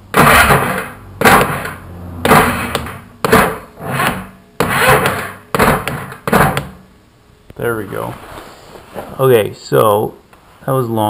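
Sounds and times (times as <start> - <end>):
engine turned over by hand: 0.0 - 6.8.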